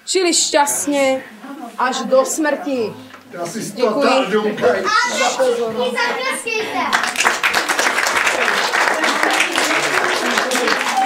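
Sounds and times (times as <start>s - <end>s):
person speaking: 0.0s - 6.9s
audience applauding: 5.9s - 11.0s.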